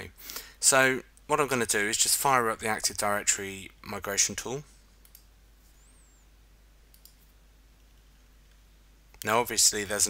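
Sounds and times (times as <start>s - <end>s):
computer mouse clicks: 5.0s - 5.3s, 6.9s - 9.3s.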